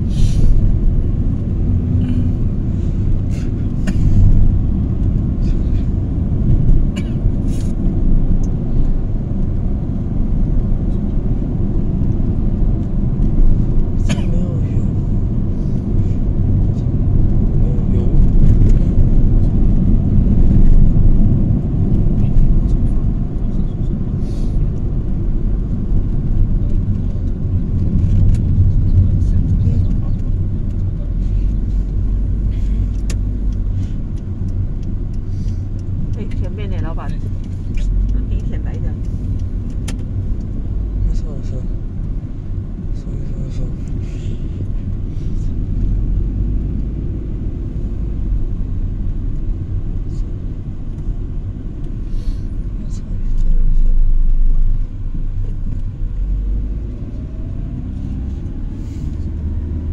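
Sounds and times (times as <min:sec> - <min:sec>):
engine and tyre rumble in car: 0:00.0 - 0:59.9.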